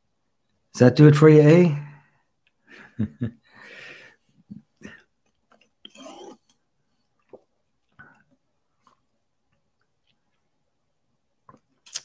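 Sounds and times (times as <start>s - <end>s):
sipping through a straw: 5.8s - 6.6s.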